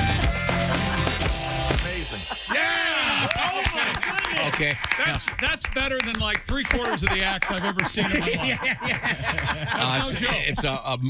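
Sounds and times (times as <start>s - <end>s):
people exclaiming: 1.8s - 5.4s, 6.7s - 10.6s
hand claps: 2.9s - 10.1s.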